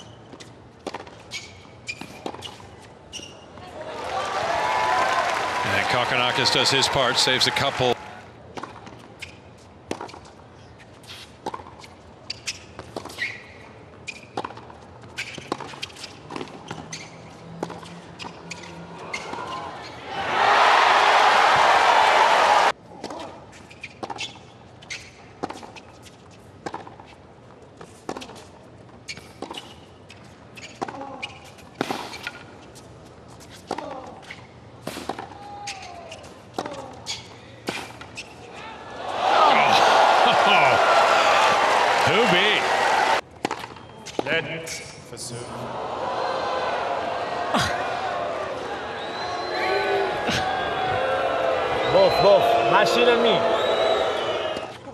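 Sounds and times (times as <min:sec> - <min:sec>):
tennis ball strikes and bounces: 0:00.8 - 0:01.2, 0:43.4 - 0:44.3
crowd applauding: 0:03.9 - 0:08.1, 0:20.3 - 0:22.7, 0:39.2 - 0:43.2.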